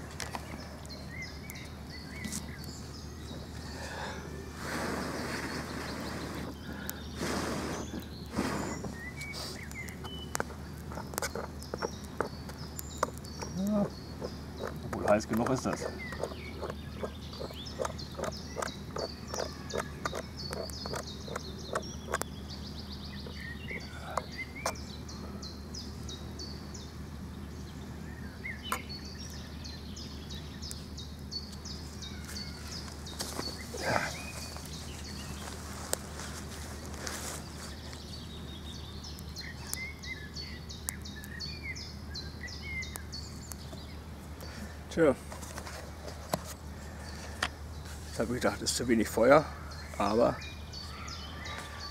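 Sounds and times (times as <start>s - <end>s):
birds chirping: 0.0s - 51.9s.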